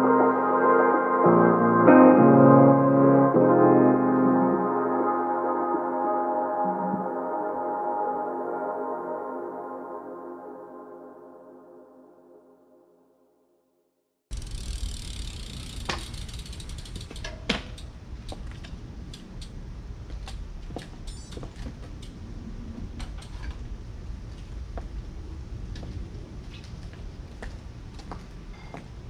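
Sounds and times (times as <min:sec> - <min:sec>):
bike freewheel hub ticking: 0:14.3 - 0:19.6
low rumble: 0:21.8 - 0:28.6.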